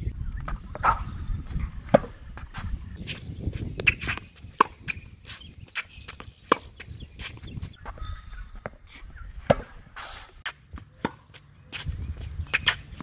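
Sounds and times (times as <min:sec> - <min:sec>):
tennis ball struck: 0:01.9 - 0:02.2, 0:03.7 - 0:07.5, 0:09.4 - 0:09.8, 0:10.7 - 0:11.9
ball bouncing on hard court: 0:03.6 - 0:07.8, 0:10.7 - 0:13.0.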